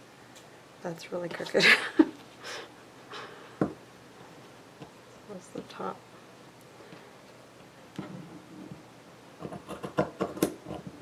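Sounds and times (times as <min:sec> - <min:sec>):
woman laughing: 0:01.6 - 0:02.2.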